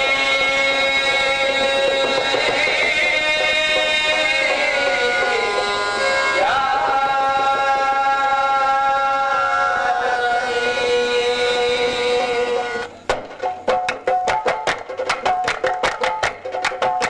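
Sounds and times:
person singing long held note: 0.0 - 12.9
harmonium: 0.0 - 13.7.

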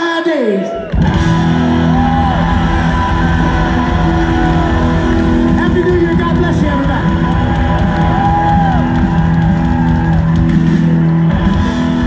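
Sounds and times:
rock band playing loud: 0.8 - 12.0.

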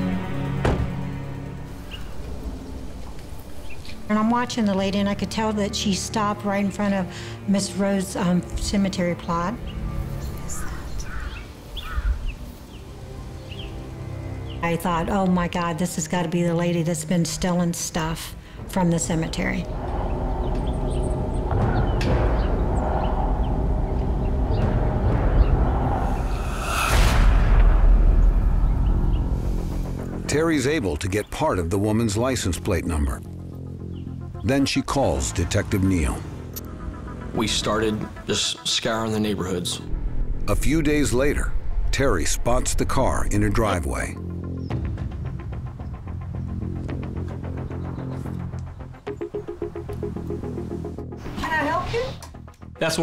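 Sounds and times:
low rumble: 18.6 - 30.8, 39.8 - 49.0.

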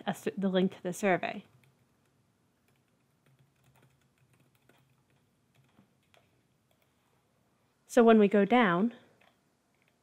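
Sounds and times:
faint keyboard typing: 1.2 - 7.4, 9.0 - 10.0.

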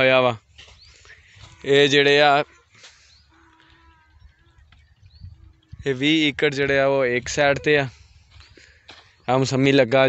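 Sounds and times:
distant animal call: 1.3 - 6.0.

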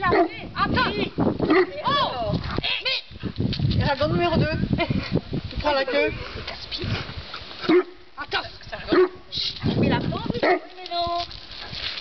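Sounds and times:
people talking: 0.0 - 3.0, 8.2 - 11.3.

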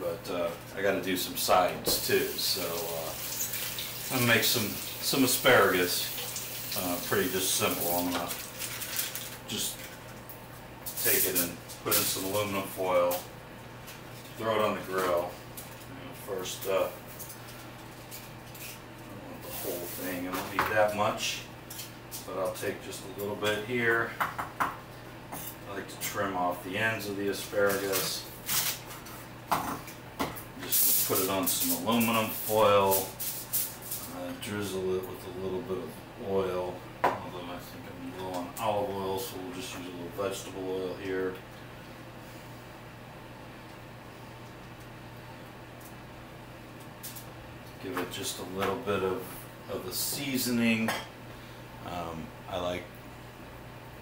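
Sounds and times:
steady low hum: 0.0 - 54.0
rustling of vegetables handled: 1.5 - 10.0, 19.4 - 20.6
faint hiss: 30.6 - 33.6.

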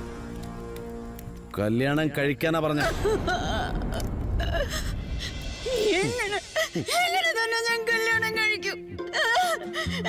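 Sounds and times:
woman sobbing: 2.8 - 10.0.

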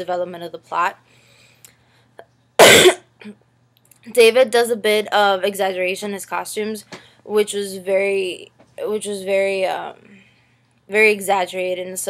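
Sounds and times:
woman coughing: 2.6 - 3.4.

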